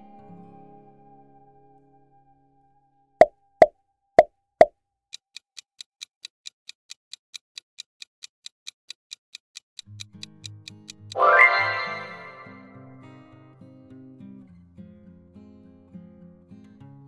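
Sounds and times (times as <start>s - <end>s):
clock ticking countdown effect: 6.2s - 12.8s
pop sound effects: 11.2s - 12.7s
low musical jingle: 11.2s - 12.9s.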